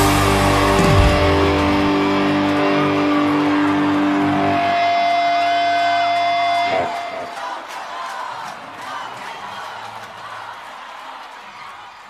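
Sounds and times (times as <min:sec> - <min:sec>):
live band playing: 0:00.0 - 0:07.1
guitar sustained notes: 0:00.0 - 0:07.3.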